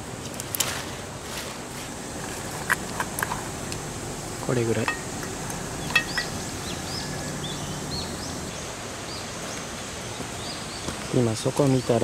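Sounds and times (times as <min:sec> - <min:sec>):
low background hiss: 0:00.0 - 0:12.0
small bird chirping: 0:04.8 - 0:12.0.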